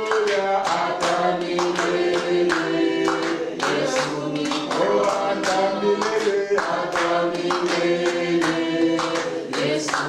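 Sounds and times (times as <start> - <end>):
congregation singing: 0.0 - 10.0
hand-clapping in time: 0.0 - 10.0.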